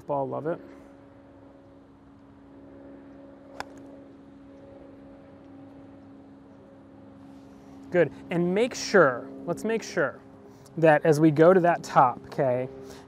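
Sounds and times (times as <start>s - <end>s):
steady low hum: 0.0s - 13.0s
golf club striking ball: 3.5s - 3.9s.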